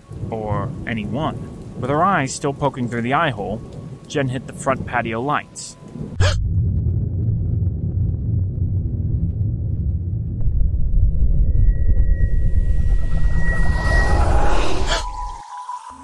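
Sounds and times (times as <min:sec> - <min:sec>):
heavy low rumble: 0:05.8 - 0:15.4
thin high tone: 0:11.4 - 0:16.0.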